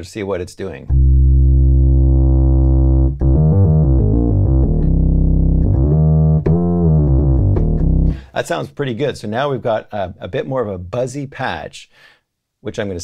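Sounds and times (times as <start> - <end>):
synthesizer bass notes: 0.9 - 8.2.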